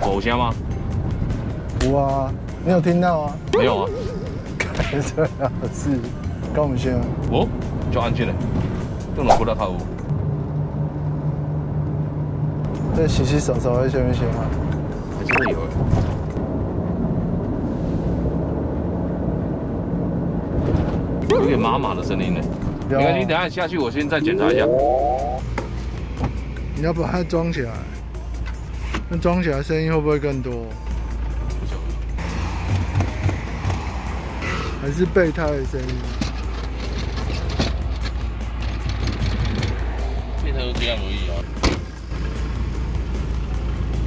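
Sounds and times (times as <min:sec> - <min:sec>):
car road and engine rumble: 0:00.0 - 0:44.0.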